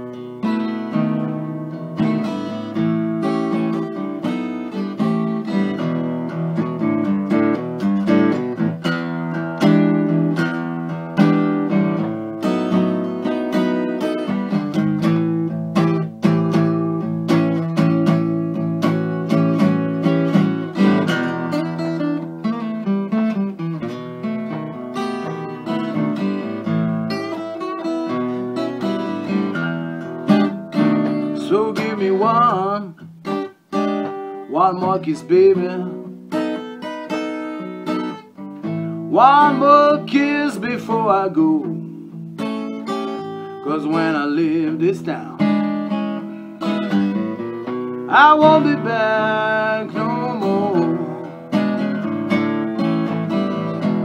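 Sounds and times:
acoustic guitar blues playing: 0.0 - 54.0.

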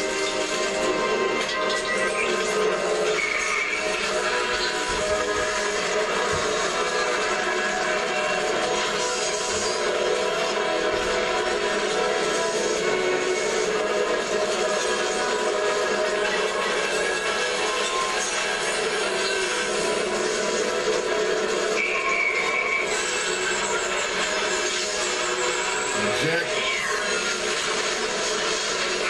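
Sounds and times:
film music score: 0.0 - 29.0
fire sound effects: 0.0 - 29.0.

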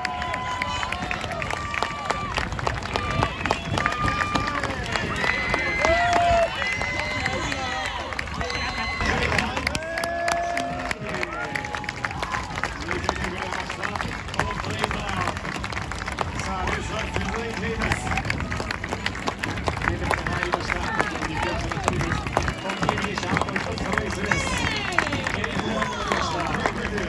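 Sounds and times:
people cheering and shouting: 0.0 - 15.4, 19.9 - 27.0
spectators clapping: 0.0 - 27.0.

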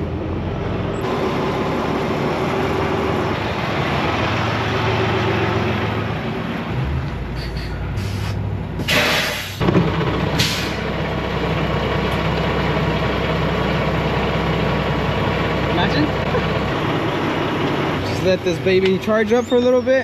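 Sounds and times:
diesel truck engine idling: 0.0 - 20.0
air brakes hissing: 7.3 - 9.6, 10.4 - 10.9.

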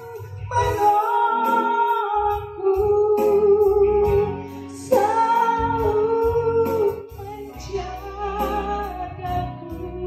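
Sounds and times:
instrumental accompaniment: 0.0 - 10.0
woman singing into microphone: 0.0 - 10.0.

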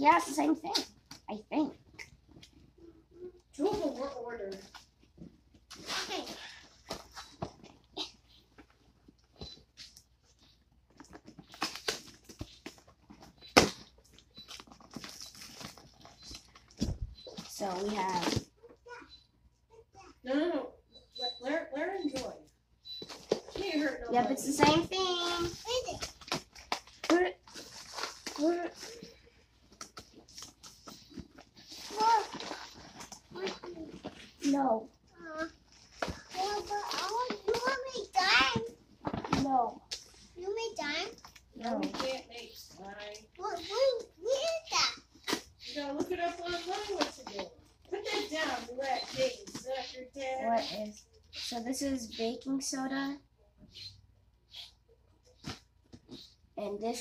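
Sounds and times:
cardboard and packing tape crackling: 5.6 - 18.7, 24.5 - 34.6, 35.2 - 52.3
packing tape scraping and ripping: 11.2 - 13.8, 25.2 - 29.0, 43.5 - 50.0.

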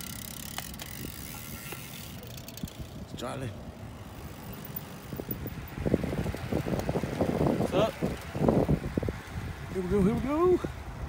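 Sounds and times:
bicycle freewheel ticking: 0.0 - 11.0
outdoor background noise: 0.0 - 11.0.

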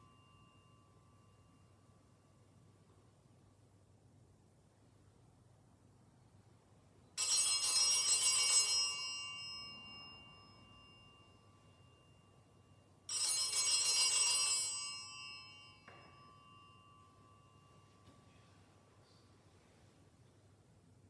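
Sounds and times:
altar bells jangling: 7.2 - 18.5.

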